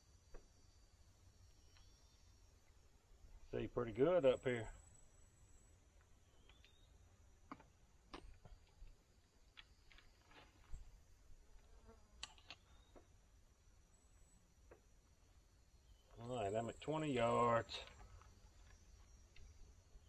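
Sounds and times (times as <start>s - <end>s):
faint clicks and taps of bow handling: 0.3s - 0.5s, 14.6s - 14.9s, 17.8s - 19.6s.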